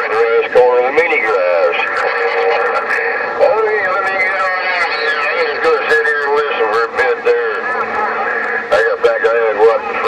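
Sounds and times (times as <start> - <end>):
garbled man's voice over radio: 0.0 - 7.9, 8.7 - 10.0
radio static: 0.0 - 10.0.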